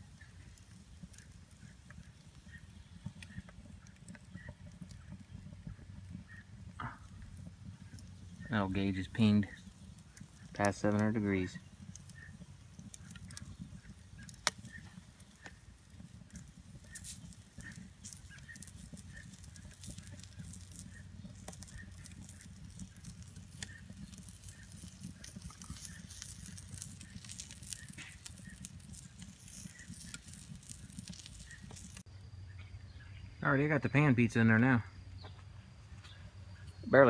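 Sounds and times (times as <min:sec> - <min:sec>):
fire crackling and popping: 0:00.0 - 0:32.2, 0:32.9 - 0:37.0
low fire rumble: 0:00.0 - 0:37.0.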